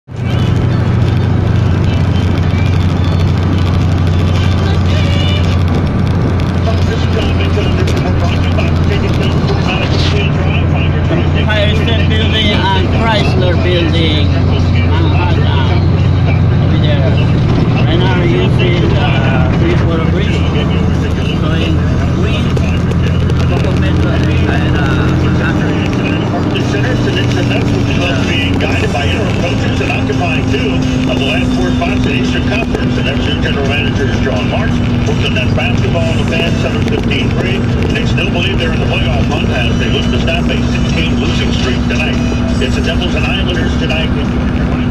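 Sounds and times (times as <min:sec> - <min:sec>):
car engine and tyres drone: 0:00.0 - 0:44.9
indistinct voices: 0:00.0 - 0:44.9.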